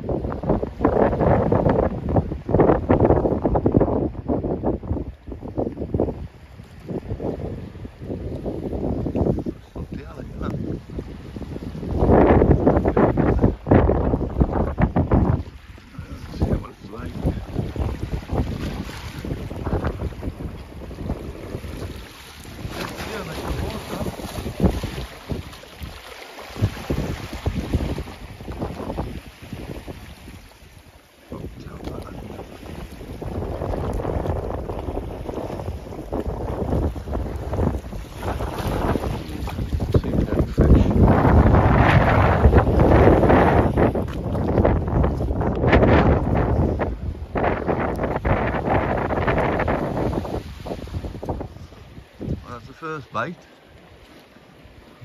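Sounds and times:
wind gusting across microphone: 0.0 - 54.0
small waves lapping at rocks: 0.0 - 55.0.

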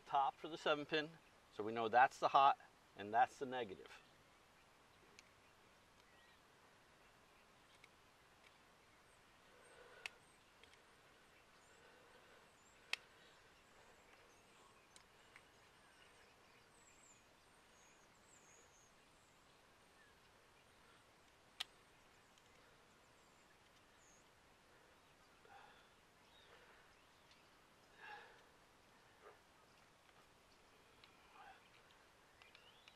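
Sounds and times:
faint bird chirps: 3.7 - 32.9.

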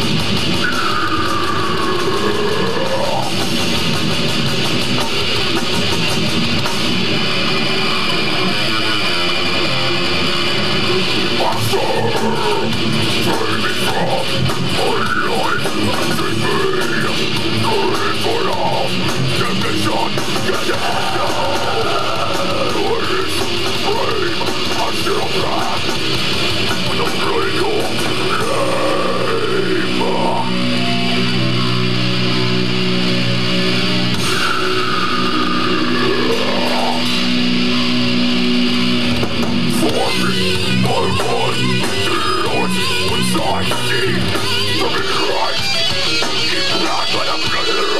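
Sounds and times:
death metal band playing: 0.0 - 47.9
pitch-bending guitar lines: 0.0 - 47.9.

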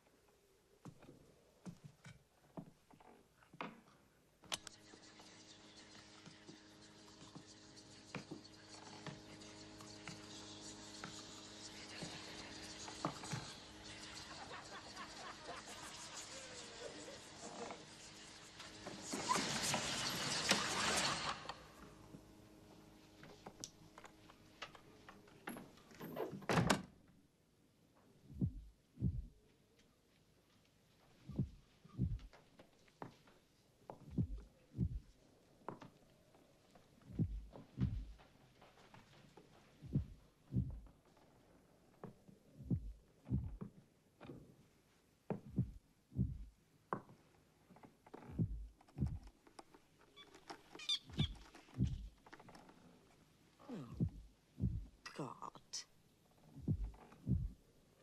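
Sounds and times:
deep falling thumps: 28.3 - 29.4, 31.3 - 32.3, 34.1 - 35.1, 37.1 - 38.2, 39.8 - 40.8, 42.6 - 43.7, 45.4 - 46.5, 48.4 - 49.2, 51.1 - 52.1, 53.9 - 55.0, 56.6 - 57.6.

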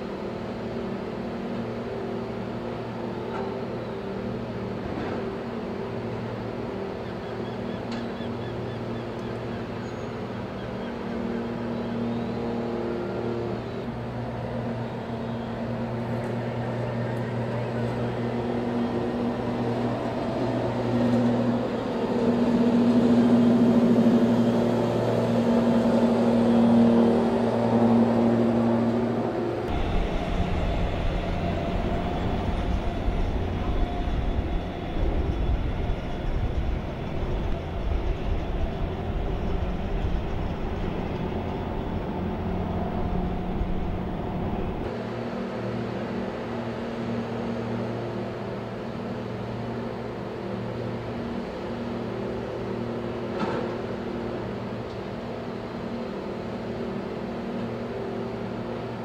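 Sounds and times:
machinery drone: 0.0 - 59.0.

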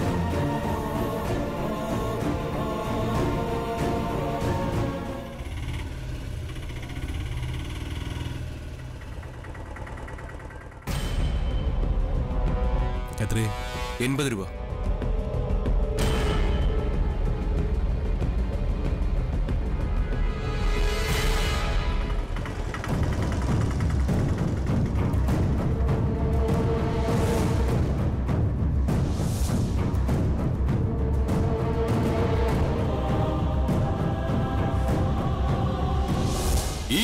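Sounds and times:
auto-rickshaw engine putter: 5.2 - 11.0, 21.9 - 25.3.

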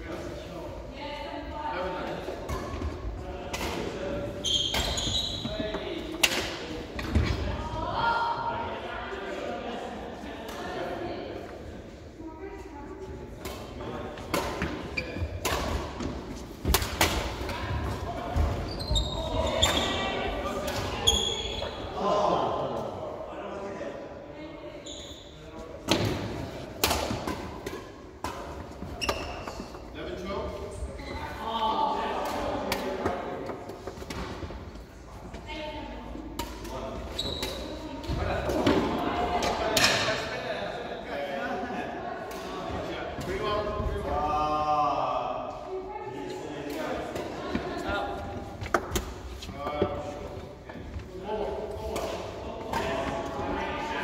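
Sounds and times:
racket hitting shuttlecock: 6.1 - 7.2, 15.4 - 17.6.

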